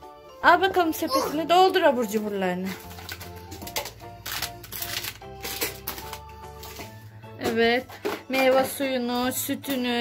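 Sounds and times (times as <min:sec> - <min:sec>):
background music with held notes: 0:00.0 - 0:10.0
snack packets crinkling: 0:01.9 - 0:07.1.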